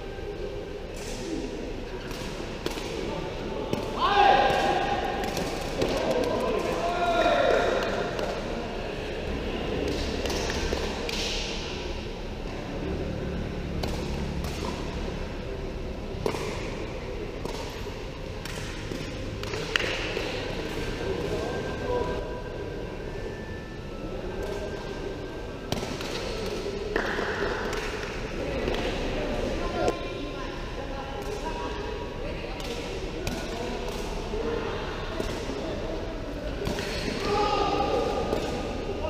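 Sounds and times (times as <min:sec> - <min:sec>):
low rumble of hall ambience: 0:00.0 - 0:39.0.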